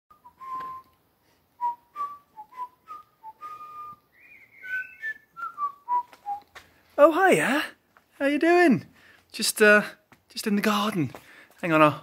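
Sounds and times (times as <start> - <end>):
person whistling a tune: 0.1 - 1.0, 1.6 - 6.6.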